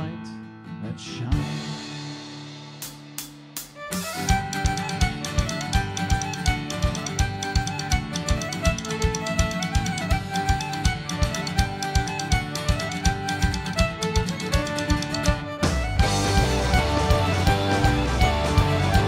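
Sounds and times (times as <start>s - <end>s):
bass: 0.0s - 2.9s, 15.6s - 19.0s
fiddle melody: 3.6s - 19.0s.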